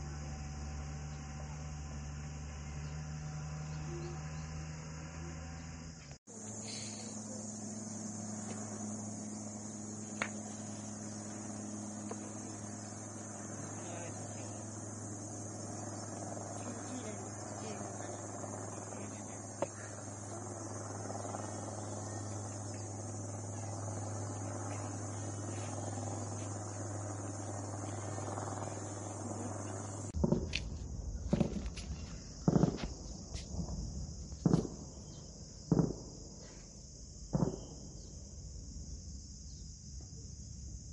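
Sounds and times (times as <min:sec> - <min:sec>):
insects chirring: 0:00.0 - 0:40.9
steady low hum: 0:00.0 - 0:40.9
sharp cracks: 0:10.1 - 0:10.7, 0:34.4 - 0:34.9.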